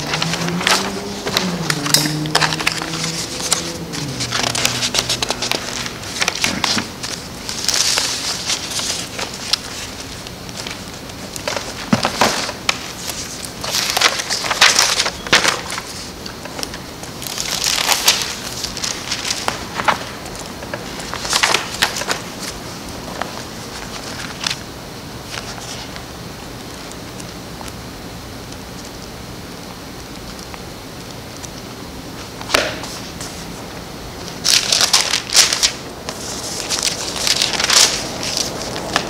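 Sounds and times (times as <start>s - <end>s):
paper pages rustling: 0.0s - 24.6s, 25.2s - 26.1s, 32.2s - 39.0s.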